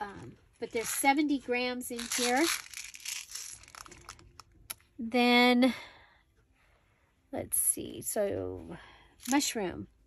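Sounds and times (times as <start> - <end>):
plastic packaging crinkling: 2.0 - 4.5.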